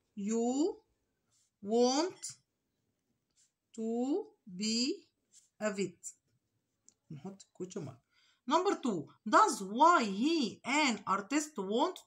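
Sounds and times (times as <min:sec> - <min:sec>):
woman's voice: 0:00.2 - 0:00.8, 0:01.6 - 0:02.4, 0:03.8 - 0:06.2, 0:08.5 - 0:12.0.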